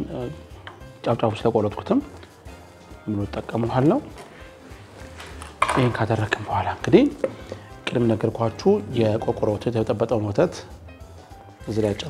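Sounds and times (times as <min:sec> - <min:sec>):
man talking: 0:03.0 - 0:04.2, 0:05.6 - 0:07.2, 0:07.9 - 0:10.7, 0:11.6 - 0:12.0
metal kitchenware clinking: 0:05.2 - 0:06.6.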